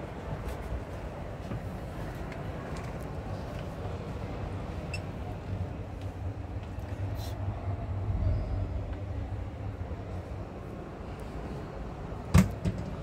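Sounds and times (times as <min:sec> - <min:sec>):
busy hall murmur: 0:00.0 - 0:13.0
distant voices: 0:01.2 - 0:13.0.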